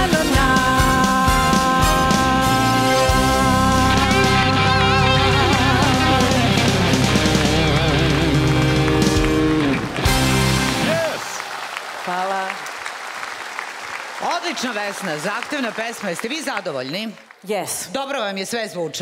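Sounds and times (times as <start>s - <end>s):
live band playing pop-rock: 0.0s - 11.3s
applause: 5.8s - 17.5s.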